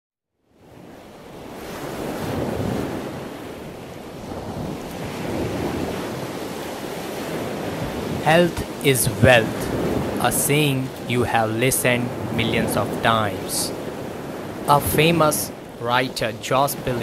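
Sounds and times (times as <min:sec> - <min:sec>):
wind: 0:00.3 - 0:17.0
surf washing on beach: 0:00.5 - 0:17.0.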